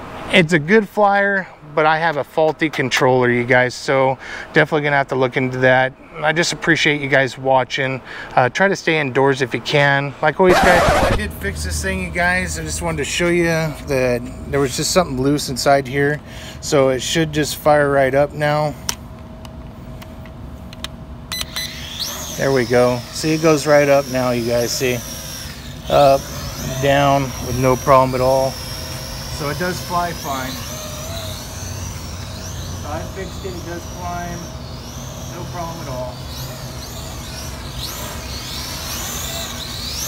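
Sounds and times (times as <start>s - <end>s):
faint continuous hum: 0.0s - 40.0s
quadcopter motors whining: 10.5s - 19.0s, 20.7s - 40.0s
outdoor background rumble: 10.6s - 15.0s.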